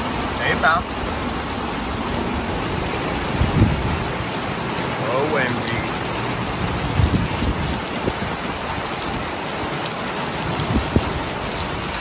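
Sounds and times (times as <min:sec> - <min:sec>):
heavy rain: 0:00.0 - 0:12.0.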